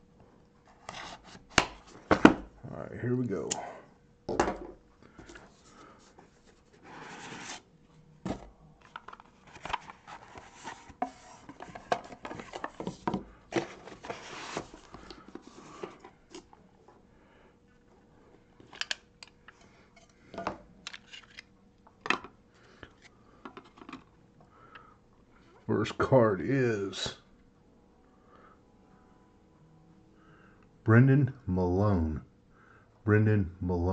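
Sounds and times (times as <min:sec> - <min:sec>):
cardboard and plastic rustling: 0:05.2 - 0:07.6, 0:08.2 - 0:16.6.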